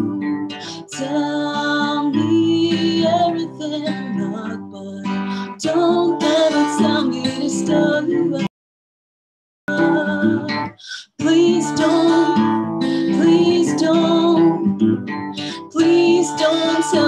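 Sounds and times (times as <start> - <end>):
acoustic guitar: 0.0 - 8.5, 9.7 - 17.0
woman singing: 0.0 - 8.5, 9.7 - 17.0.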